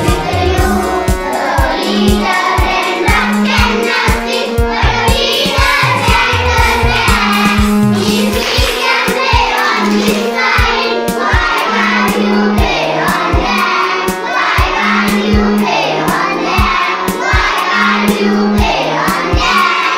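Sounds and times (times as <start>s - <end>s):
children singing together: 0.0s - 19.9s
music accompaniment with steady beat: 0.0s - 19.9s.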